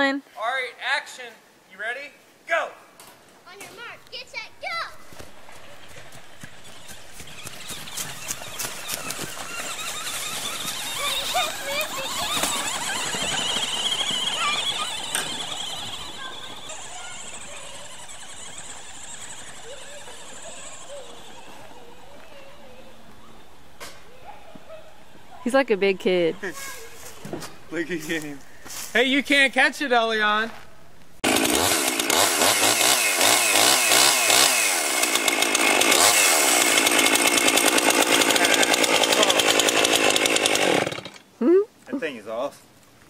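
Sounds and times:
remote-control truck motor whining: 4.0 - 23.6, 31.3 - 41.2.

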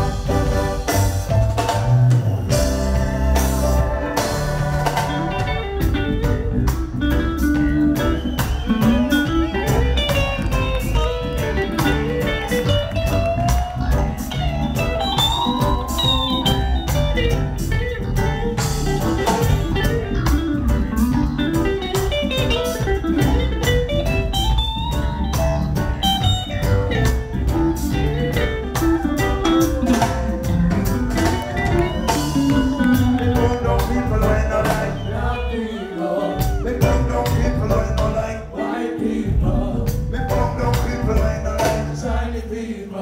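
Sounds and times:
steady drum beat: 0.0 - 35.3, 36.4 - 38.4, 39.2 - 42.2
heavy bass: 0.0 - 35.5, 36.4 - 38.4, 39.2 - 42.2
electric guitar lead melody: 2.5 - 34.5.

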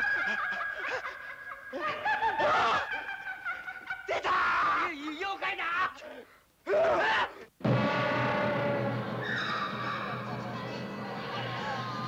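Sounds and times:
eerie cackling laughter: 0.0 - 4.3, 8.3 - 12.0
frightened cries and shouts: 0.0 - 12.0.

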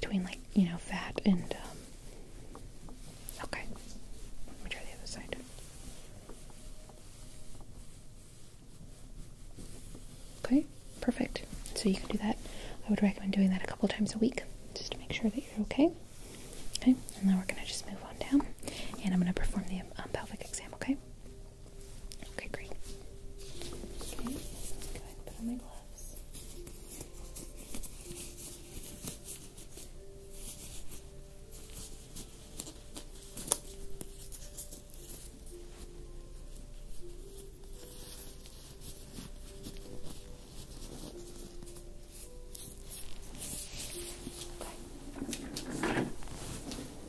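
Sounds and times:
soft background music: 0.0 - 47.0
plastic gloves crinkling: 0.3 - 47.0.

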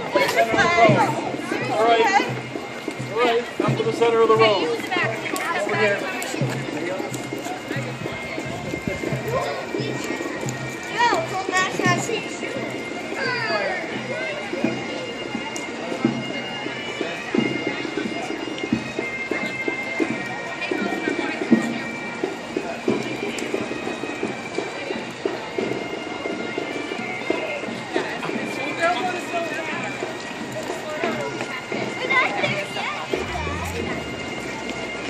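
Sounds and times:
chatter of children and onlookers: 0.0 - 35.0
music with long held notes: 33.1 - 35.0.

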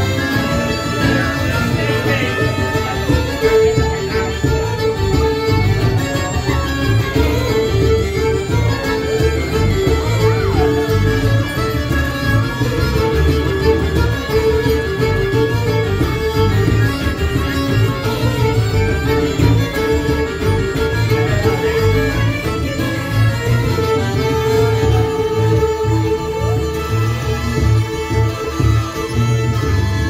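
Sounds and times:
acoustic bass guitar: 0.0 - 6.5
frame drum beat: 0.0 - 29.8
accordion: 0.0 - 30.0
bagpipes: 0.0 - 30.0
fiddles: 0.0 - 30.0.

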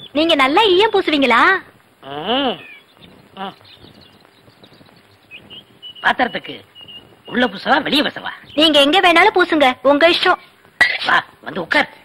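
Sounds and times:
faint bird chirps: 0.0 - 11.3
quiet outdoor ambience: 0.0 - 12.0.

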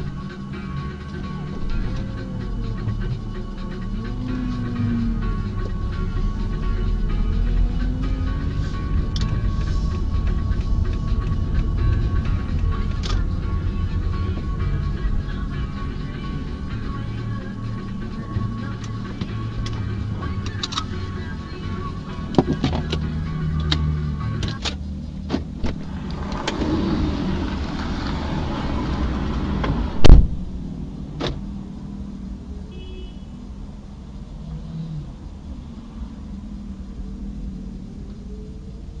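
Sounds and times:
music playing: 0.0 - 31.8
car rumble from inside cabin: 0.0 - 39.0
loud thump: 29.7 - 31.4.

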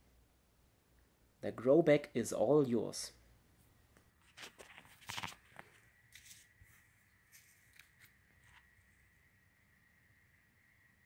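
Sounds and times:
rustles: 3.6 - 9.0
faint steady high tone: 5.8 - 11.0.

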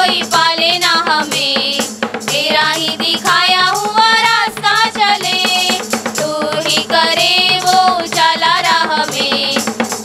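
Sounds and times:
women singing worship song: 0.0 - 9.8.

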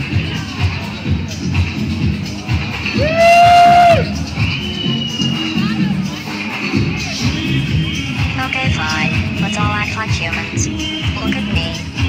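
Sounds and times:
crowd noise: 0.0 - 12.0
dance music: 0.0 - 12.0.

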